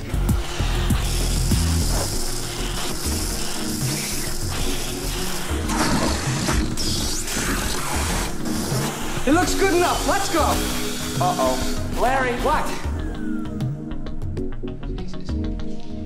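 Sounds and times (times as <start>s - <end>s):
electric shaver buzzing: 0.0s - 12.2s
music: 0.0s - 16.0s.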